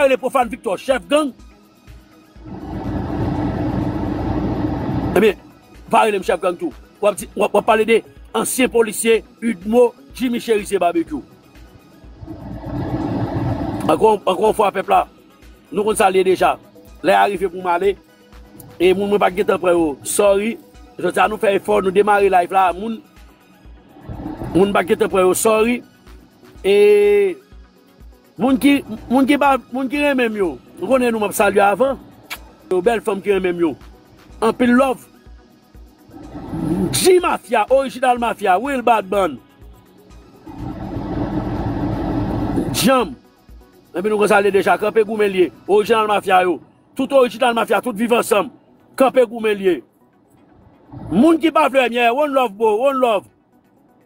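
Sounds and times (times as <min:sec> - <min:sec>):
road vehicle passing: 0:02.4 - 0:05.2, 0:12.1 - 0:14.0, 0:23.9 - 0:25.0, 0:36.1 - 0:37.0, 0:40.4 - 0:42.8, 0:50.5 - 0:51.2.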